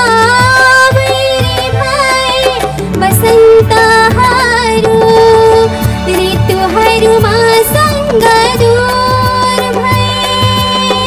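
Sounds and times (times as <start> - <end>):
woman singing into a microphone: 0.0 - 11.0
hand drum beat: 0.4 - 6.6
band playing: 1.4 - 8.6.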